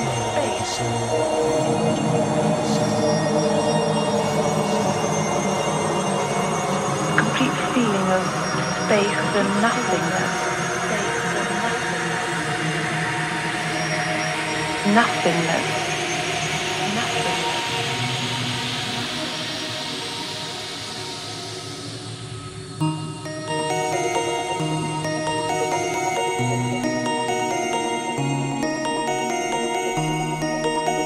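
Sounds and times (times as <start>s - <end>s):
dark electronic drone music: 0.0s - 31.0s
held synth tones: 0.0s - 31.0s.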